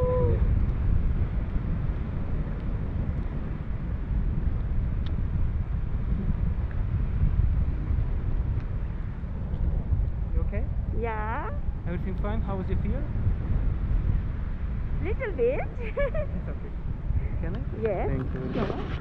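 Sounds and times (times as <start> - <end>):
wind rumbling over microphone: 0.0 - 19.0.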